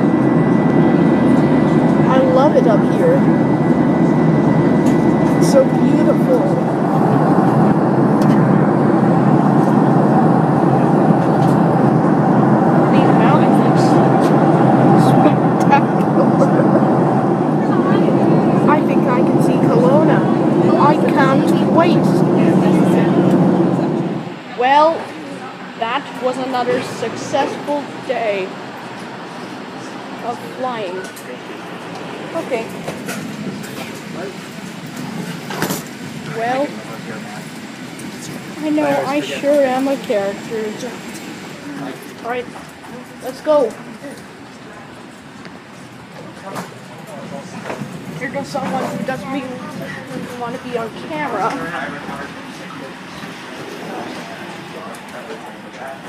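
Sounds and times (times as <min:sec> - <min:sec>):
faint hum tones: 0:00.0 - 0:56.0
faint passenger voices: 0:00.0 - 0:56.0
jet airliner cabin noise: 0:00.0 - 0:56.0.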